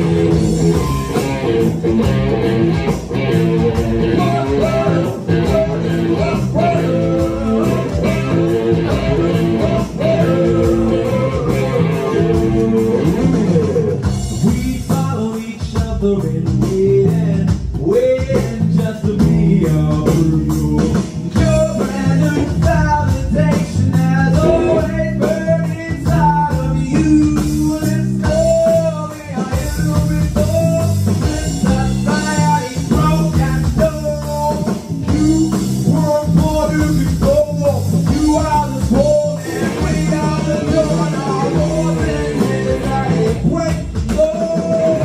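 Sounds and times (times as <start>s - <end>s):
bass guitar: 0.0s - 45.0s
electric guitars: 0.0s - 45.0s
electronic drum kit: 0.0s - 45.0s
man singing into a microphone: 3.6s - 45.0s.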